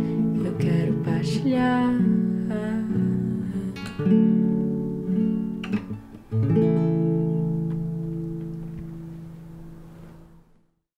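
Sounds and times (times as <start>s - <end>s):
classical guitar chord ringing: 0.0s - 10.5s.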